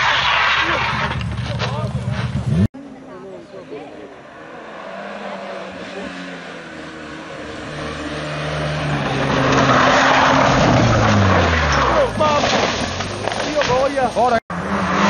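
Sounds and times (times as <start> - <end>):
rally car engine: 0.0 - 2.8, 3.7 - 15.0.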